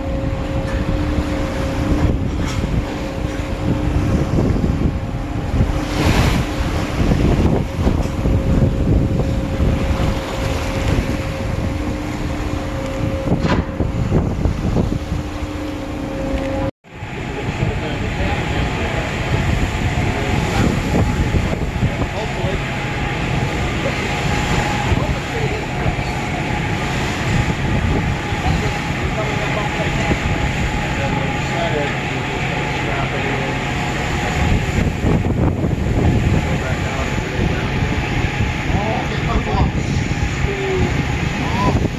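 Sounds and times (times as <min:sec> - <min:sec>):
machinery whine: 0:00.0 - 0:41.9
rush of ship wake: 0:00.0 - 0:41.9
steady machinery hum: 0:00.0 - 0:41.9
wind buffeting microphone: 0:00.0 - 0:41.9.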